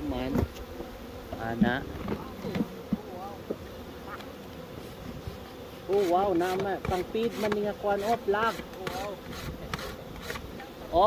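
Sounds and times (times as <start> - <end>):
bees buzzing: 0.0 - 11.0.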